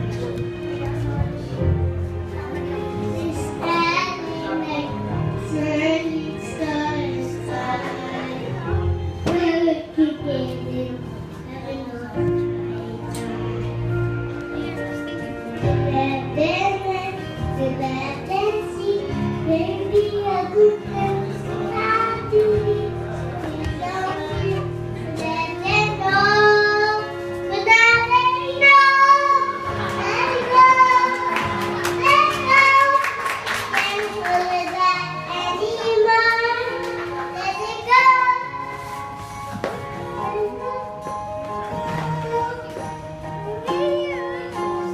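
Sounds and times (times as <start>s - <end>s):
instrumental accompaniment: 0.0s - 44.9s
girl singing into microphone: 2.8s - 13.6s, 14.4s - 38.9s, 40.0s - 44.9s.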